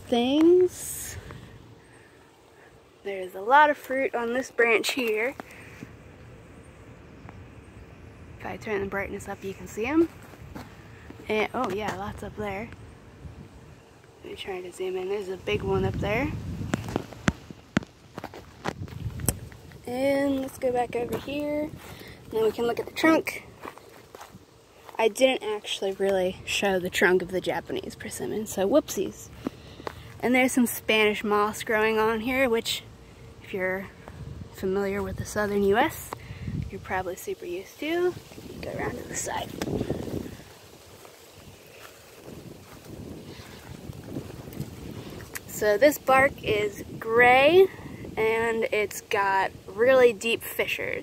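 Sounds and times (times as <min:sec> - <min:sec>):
wind rumbling on microphone: 0:03.4 - 0:51.0
footsteps crunching on mulch: 0:09.9 - 0:12.1, 0:15.9 - 0:26.2, 0:37.0 - 0:45.5.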